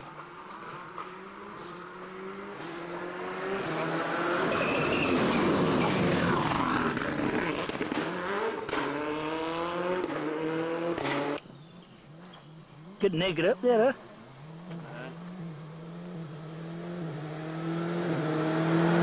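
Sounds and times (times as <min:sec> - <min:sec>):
rally car engine passing: 0:00.0 - 0:19.0.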